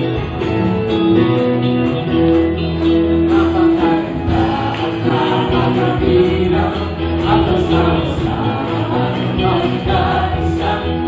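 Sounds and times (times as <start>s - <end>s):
live band accompaniment: 0.0s - 11.0s
congregation singing praise song: 3.3s - 11.0s.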